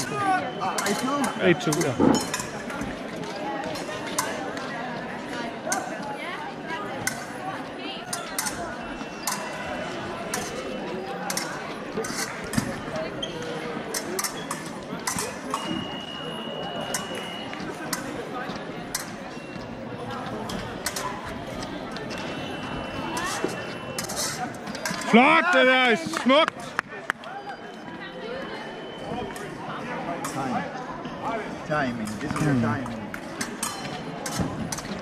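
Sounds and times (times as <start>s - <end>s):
reverberant hall chatter: 0.0s - 35.0s.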